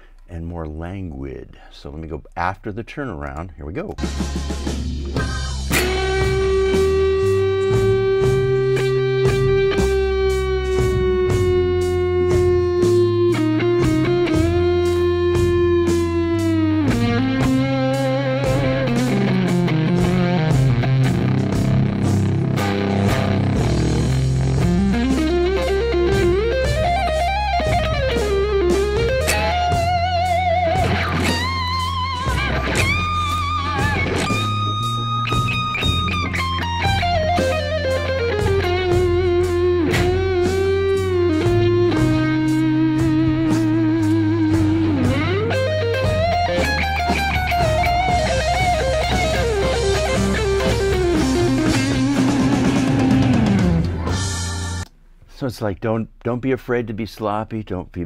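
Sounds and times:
bass line: 0.0s - 54.9s
overdriven electric guitar blues lead: 4.6s - 54.9s.

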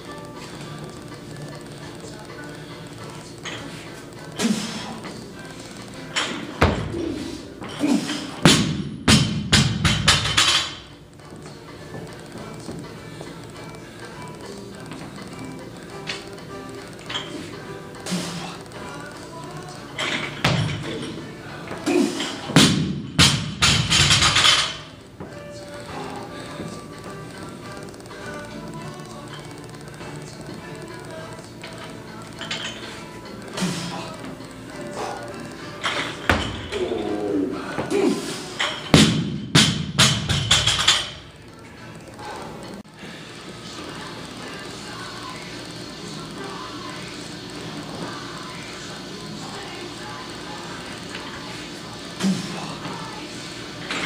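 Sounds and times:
background music: 0.0s - 54.0s.

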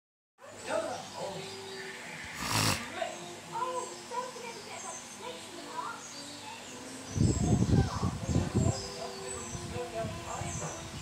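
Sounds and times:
loud hissy burst: 1.9s - 3.0s.

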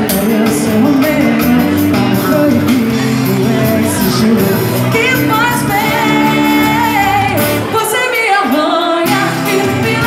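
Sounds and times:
live band playing: 0.0s - 10.0s
woman singing: 0.3s - 10.0s.

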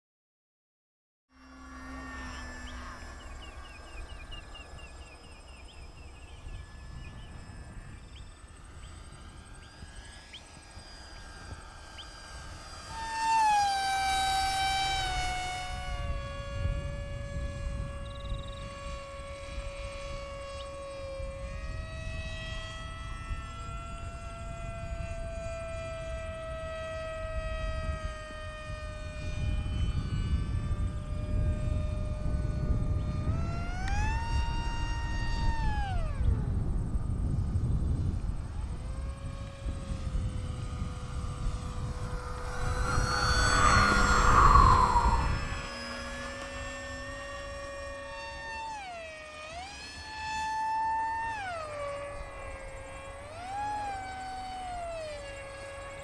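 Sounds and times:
model airplane motor whining: 1.3s - 56.0s
low rumble: 36.7s - 47.1s
rushing noise: 41.7s - 46.2s.

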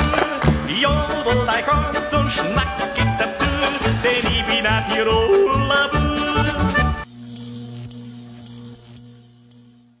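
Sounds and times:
faint regular ticks: 7.0s - 10.0s
low electrical hum: 7.0s - 10.0s.

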